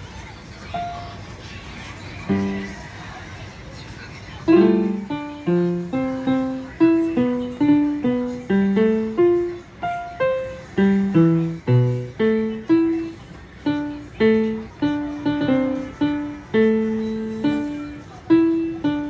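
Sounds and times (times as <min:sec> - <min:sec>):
electronic piano slow melody: 0:02.3 - 0:02.8, 0:04.5 - 0:19.0.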